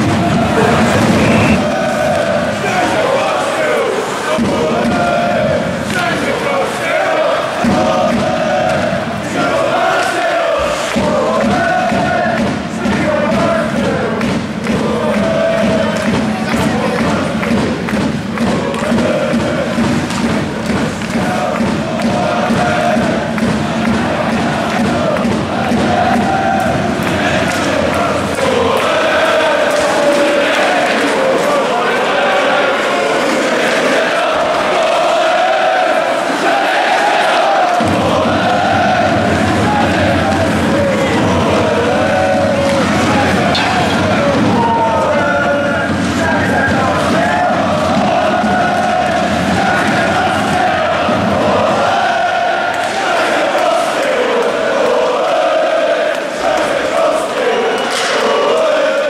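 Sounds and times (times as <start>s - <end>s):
crowd chanting and singing: 0.0s - 59.0s.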